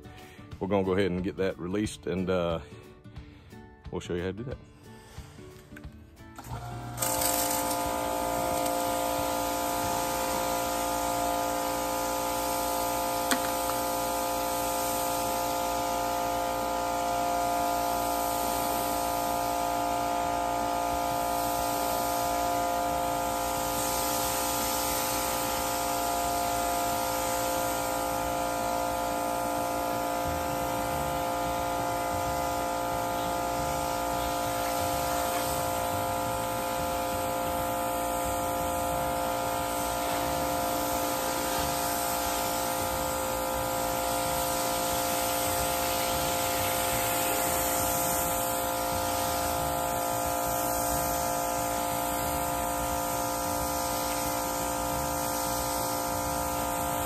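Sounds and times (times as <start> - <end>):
pressure washer humming: 5.0 - 57.0
water spray hissing: 6.6 - 57.0.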